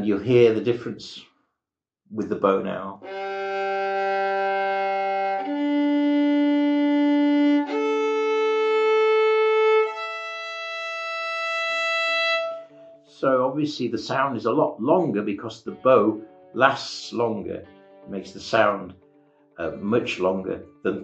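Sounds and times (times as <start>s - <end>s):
violin open strings bowed: 3.0s - 21.0s.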